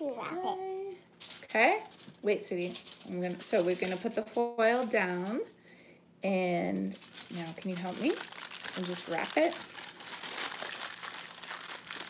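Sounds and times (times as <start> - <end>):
foil wrapper crinkling: 1.2 - 5.5, 6.7 - 12.0.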